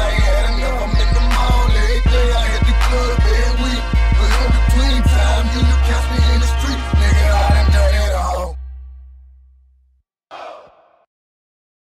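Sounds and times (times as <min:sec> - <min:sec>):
low bass note: 0:00.0 - 0:09.9.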